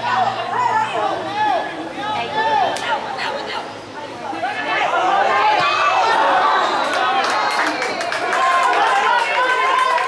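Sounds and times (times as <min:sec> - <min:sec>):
voices shouting and calling: 0:00.0 - 0:10.0.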